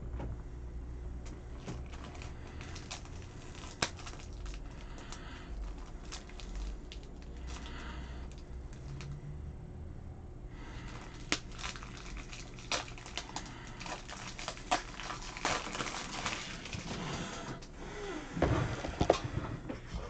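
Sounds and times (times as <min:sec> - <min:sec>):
cards and plastic rustling: 0:01.5 - 0:09.2, 0:10.6 - 0:17.7.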